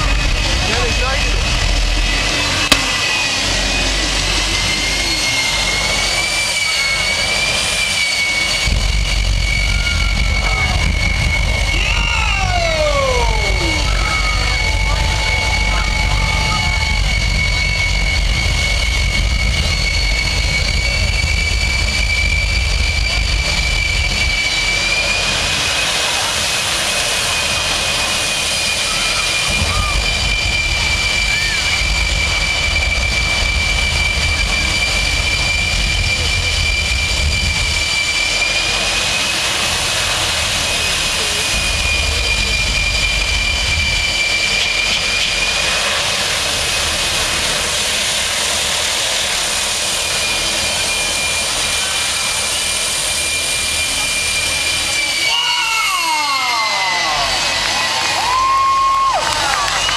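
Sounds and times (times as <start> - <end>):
jet engine whine and rumble: 0.0 - 59.9.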